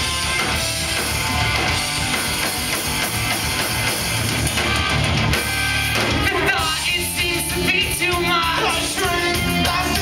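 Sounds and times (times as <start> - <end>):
drum kit: 0.0 - 10.0
electric guitars: 0.0 - 10.0.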